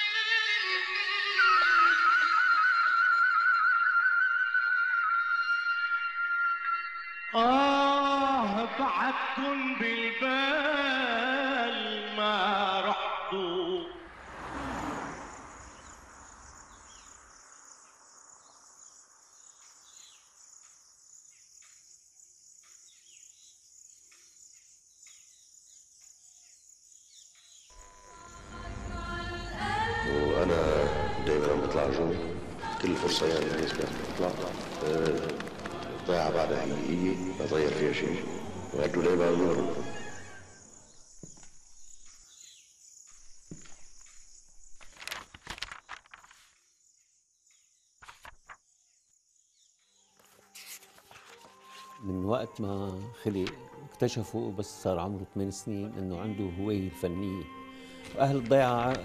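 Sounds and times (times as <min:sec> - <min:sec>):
high insect drone: 0:14.1 - 0:27.2, 0:27.8 - 0:45.2
man speaking on old recording: 0:30.1 - 0:35.4, 0:36.0 - 0:40.1, 0:58.2 - 0:59.0.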